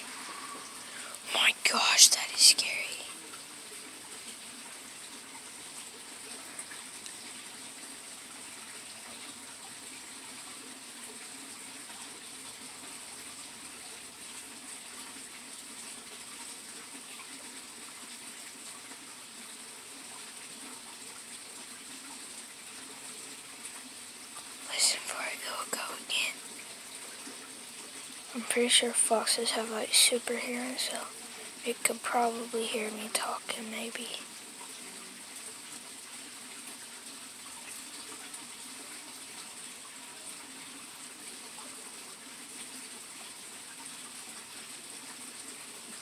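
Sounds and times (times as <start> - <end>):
person whispering: 0.0 - 3.3, 24.7 - 26.4, 28.3 - 34.3
background hiss: 0.0 - 46.0.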